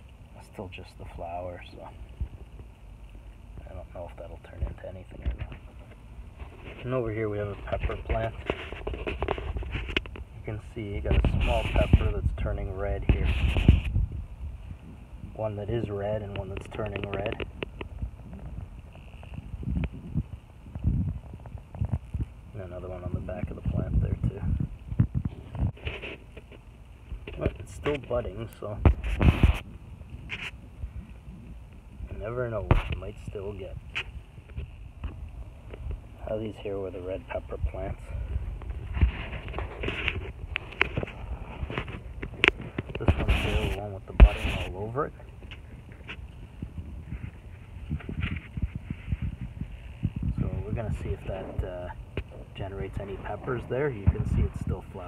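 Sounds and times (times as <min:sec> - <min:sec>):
wind rumbling on microphone: 0:00.0 - 0:55.0.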